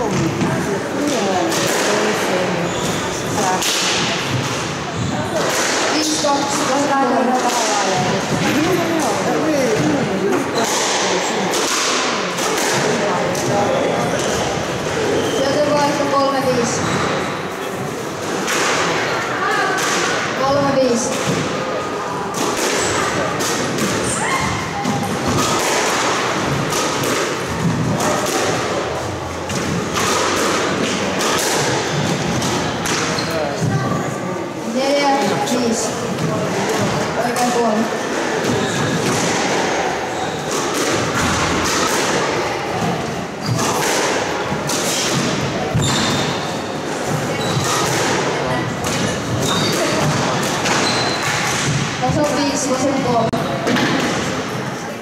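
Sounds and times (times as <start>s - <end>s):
squash ball impacts: 0.0s - 17.4s, 18.2s - 33.9s, 35.2s - 54.7s.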